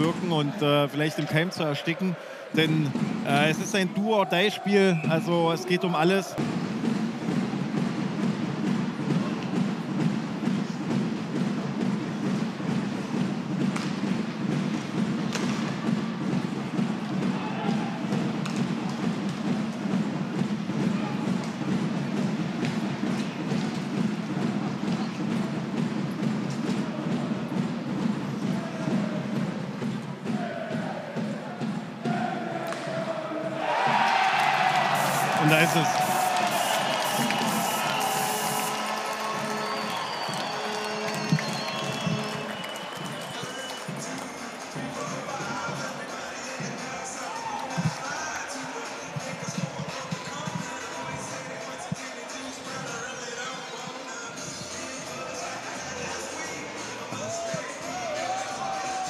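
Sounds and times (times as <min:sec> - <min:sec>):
arena music: 0:25.2 - 0:59.0
crowd cheering: 0:32.1 - 0:46.1, 0:56.5 - 0:59.0.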